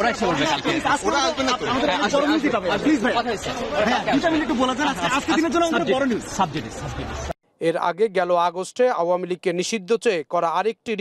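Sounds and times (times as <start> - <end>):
voices chattering: 0.0 - 7.4
man talking: 0.0 - 11.0.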